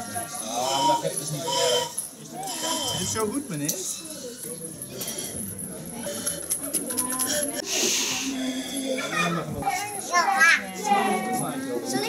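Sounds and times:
children chattering: 0:00.0 - 0:12.0
rasping noise: 0:00.3 - 0:09.0
high child's voice: 0:09.6 - 0:11.2.

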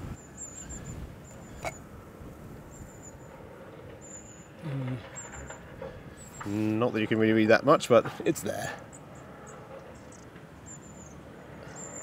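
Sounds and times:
wind buffeting microphone: 0:00.0 - 0:08.3.

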